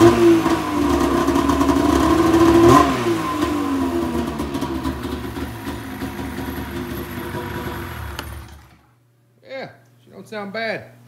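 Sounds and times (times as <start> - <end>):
snowmobile engine idling: 0.0 - 8.8.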